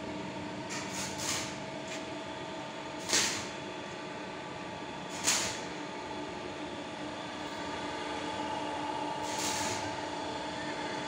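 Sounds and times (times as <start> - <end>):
conveyor drive humming: 0.0 - 11.0.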